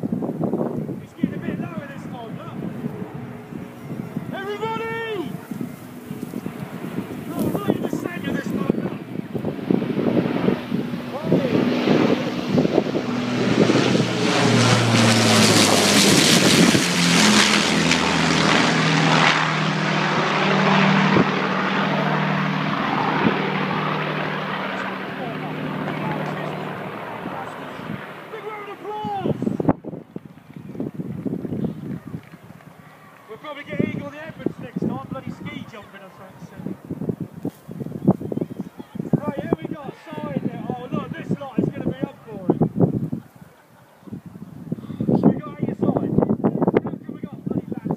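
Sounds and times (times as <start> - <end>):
aircraft engines droning: 0.0 - 47.9.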